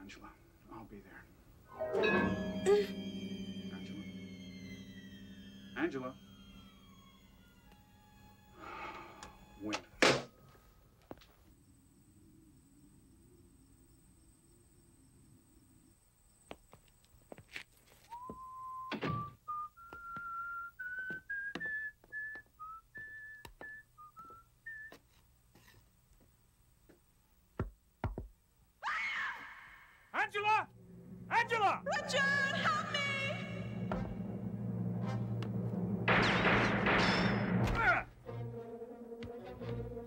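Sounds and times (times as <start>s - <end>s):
man whistling: 18.1s - 25.0s.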